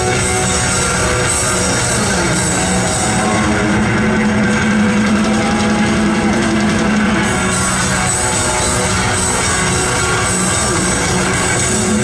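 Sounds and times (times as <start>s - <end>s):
live rock band: 0.0s - 12.0s
low electric guitar drone: 0.0s - 12.0s.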